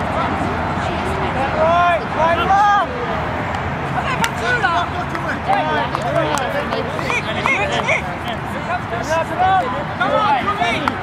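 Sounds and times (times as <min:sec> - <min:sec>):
players shouting: 0:01.3 - 0:11.0.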